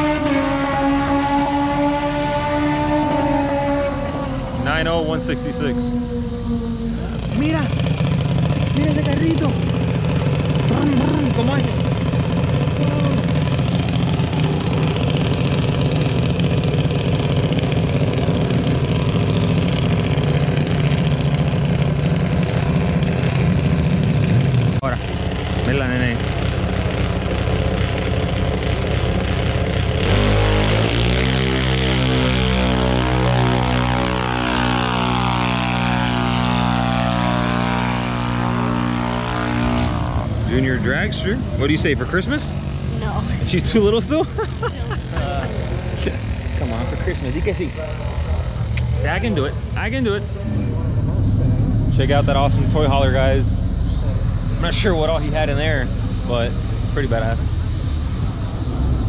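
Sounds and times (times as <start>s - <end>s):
loud pitched race car engine: 0.0s - 59.0s
steady engine drone: 0.0s - 59.0s.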